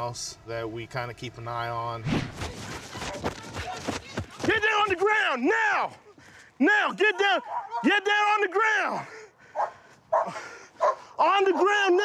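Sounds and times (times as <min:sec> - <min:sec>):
dog barking: 0:07.4 - 0:07.9, 0:09.6 - 0:11.1.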